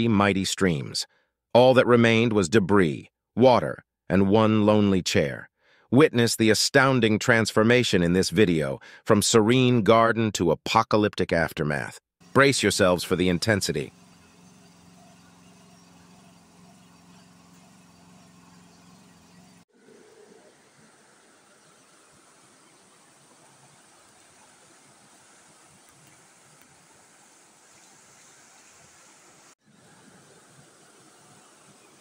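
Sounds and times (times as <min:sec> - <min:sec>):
floodwater rushing: 0:12.3 - 0:32.0.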